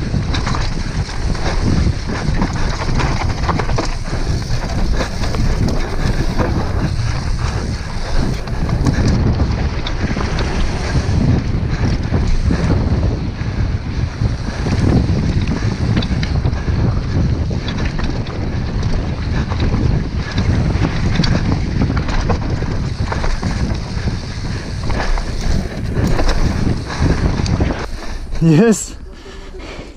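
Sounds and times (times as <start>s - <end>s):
bike rattling: 0.0s - 29.9s
tyres on dirt trail: 0.0s - 29.9s
wind rushing over microphone: 0.0s - 29.9s.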